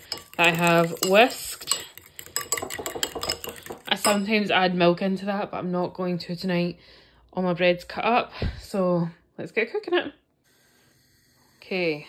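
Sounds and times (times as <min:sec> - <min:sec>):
fork whisking eggs in bowl: 0:00.0 - 0:04.4.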